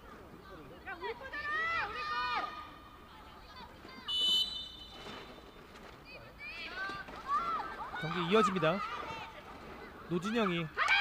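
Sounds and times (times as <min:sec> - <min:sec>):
referee's whistle: 0:04.1 - 0:05.2.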